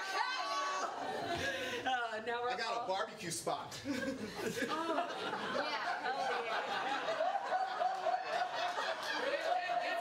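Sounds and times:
people laughing: 3.8 - 10.0.

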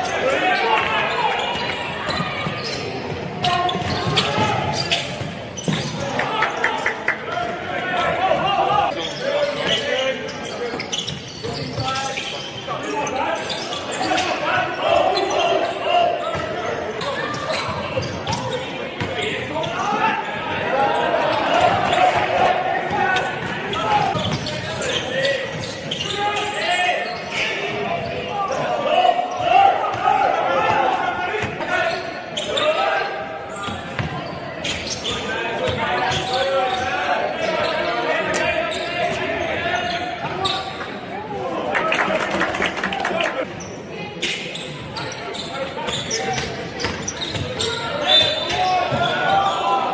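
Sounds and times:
voices of people: 0.0 - 49.9
basketball bouncing on wooden court: 24.1 - 24.5, 34.0 - 34.2.

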